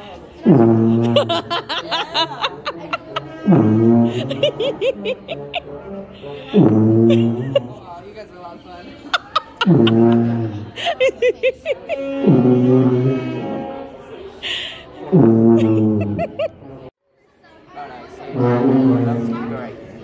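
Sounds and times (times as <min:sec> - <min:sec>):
tuba low held notes: 0:00.4 - 0:01.7, 0:03.2 - 0:07.8, 0:09.6 - 0:10.8, 0:11.8 - 0:14.0, 0:15.0 - 0:16.7, 0:18.3 - 0:19.7.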